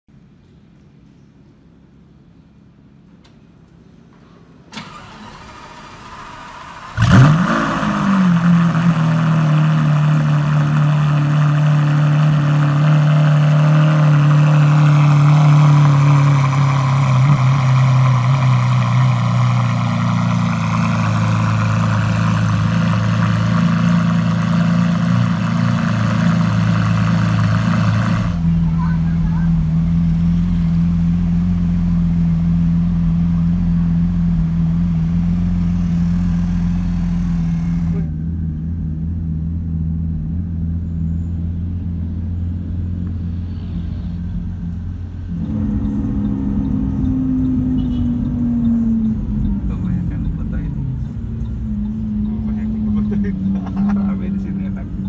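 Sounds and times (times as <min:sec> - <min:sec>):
deep engine rumble: 0:00.1 - 0:55.0
car engine starting and idling: 0:02.0 - 0:55.0
click: 0:03.0 - 0:03.8.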